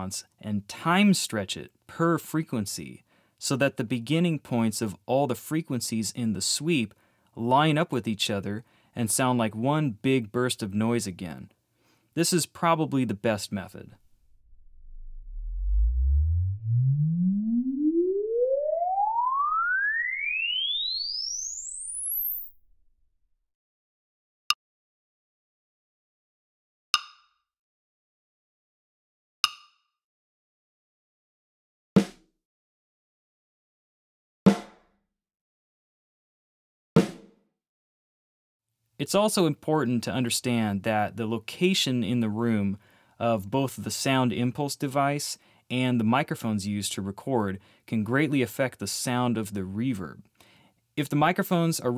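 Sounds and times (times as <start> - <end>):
rising sine-wave sweep: 14.3 - 22.7
snare drum hit with reverb: 34.5 - 34.8.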